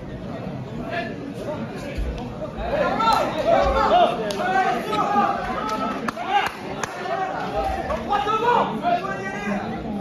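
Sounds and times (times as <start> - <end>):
voices chattering in a hall: 0.0 - 10.0.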